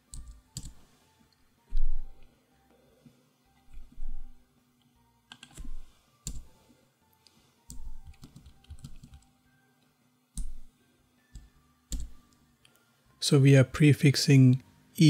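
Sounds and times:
computer keyboard typing: 0.1s - 0.8s, 5.3s - 6.5s, 7.7s - 9.3s, 11.3s - 12.4s.

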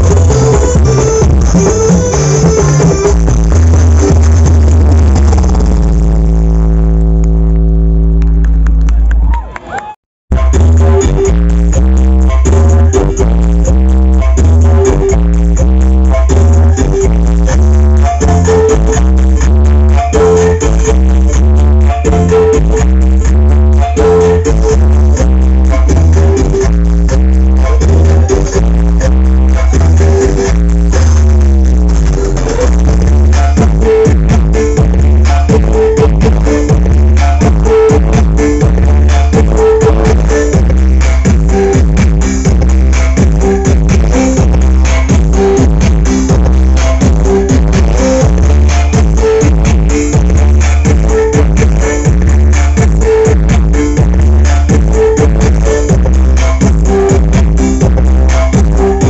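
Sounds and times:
long droning bass note: 0.0s - 9.2s, 10.3s - 59.0s
loud music with deep bass: 0.0s - 9.3s, 10.3s - 59.0s.

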